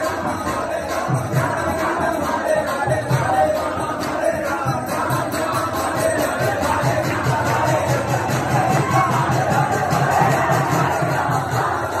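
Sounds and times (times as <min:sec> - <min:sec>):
crowd shouting along: 0:06.2 - 0:12.0.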